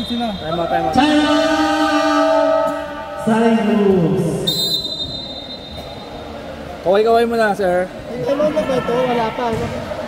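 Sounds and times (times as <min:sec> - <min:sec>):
referee's whistle blown: 0:04.4 - 0:05.9.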